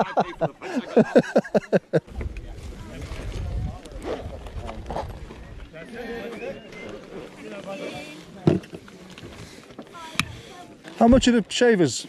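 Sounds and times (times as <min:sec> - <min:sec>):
wind buffeting microphone: 0:02.1 - 0:05.7
faint voices: 0:02.2 - 0:11.4.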